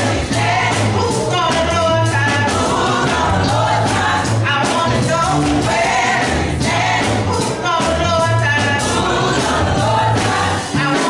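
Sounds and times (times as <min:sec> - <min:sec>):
instrumental accompaniment with bass line: 0:00.0 - 0:11.0
women's vocal group singing gospel: 0:00.0 - 0:11.0.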